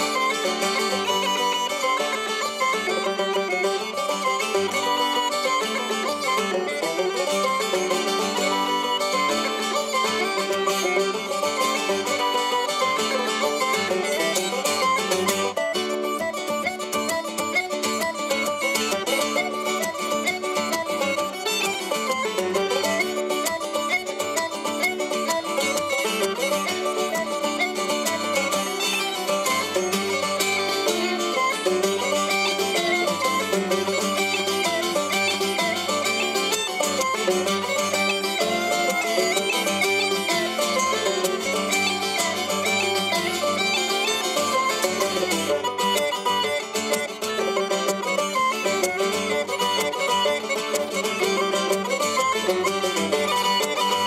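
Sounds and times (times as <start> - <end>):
banjo: 0.0 - 54.0
strummed acoustic guitar: 0.0 - 54.0
uilleann pipes jig melody: 0.0 - 54.0.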